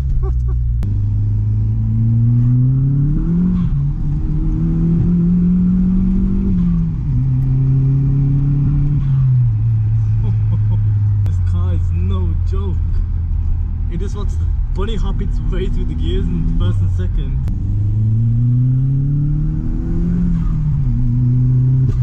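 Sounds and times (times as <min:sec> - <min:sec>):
car engine revving: 0:00.0 - 0:22.0.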